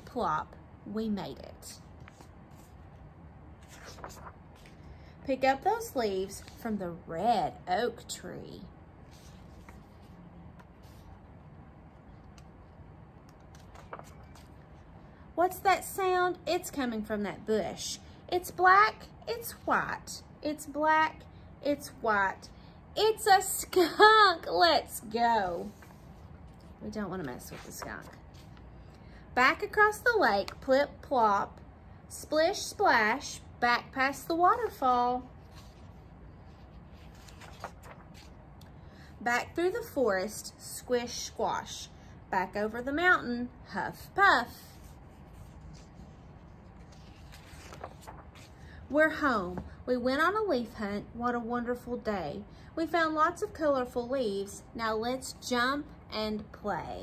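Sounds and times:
book page turning: 2.0 - 2.9, 3.6 - 4.8, 9.1 - 11.2, 13.2 - 14.7, 35.4 - 38.4, 44.6 - 48.6.

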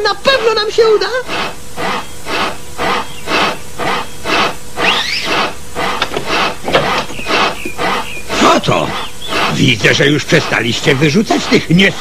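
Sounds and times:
hand saw cutting wood: 4.3 - 9.7.

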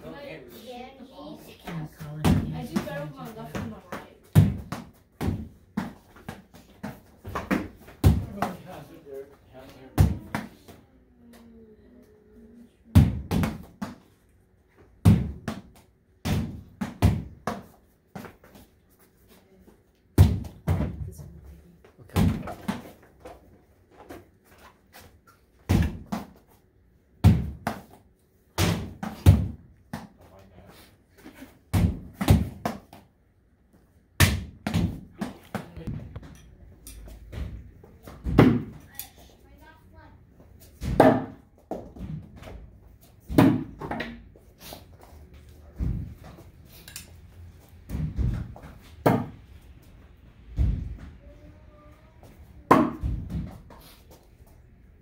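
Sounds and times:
small ball bouncing off wall and floor: 40.7 - 44.4, 47.6 - 49.5, 52.6 - 53.8.

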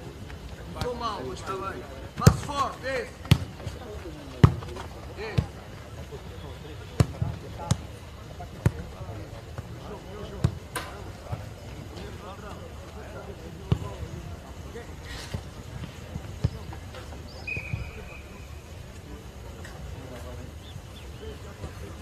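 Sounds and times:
distant players calling: 0.6 - 22.0.

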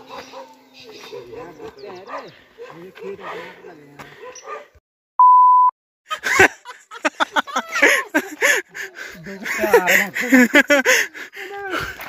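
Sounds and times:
voices: 0.1 - 4.2, 7.6 - 12.0
censor beep: 5.2 - 5.7.

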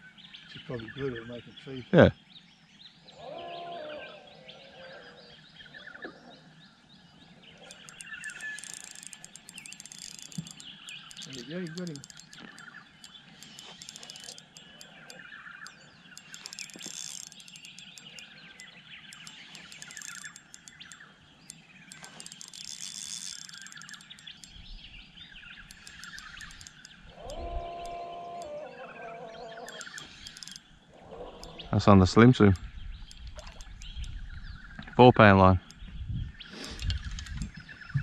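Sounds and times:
birds chirping and calling: 0.0 - 38.0
lower steady call: 7.6 - 34.4.

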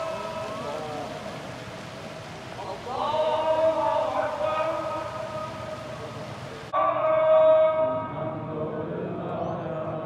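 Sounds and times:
man chanting over loudspeaker: 0.0 - 1.8, 2.6 - 10.0
open-air background noise: 0.0 - 10.0.

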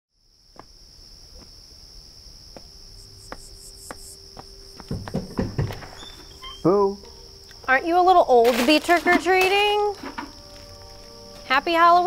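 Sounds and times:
crickets chirping: 0.1 - 12.0
soft thumps: 2.5 - 6.4.

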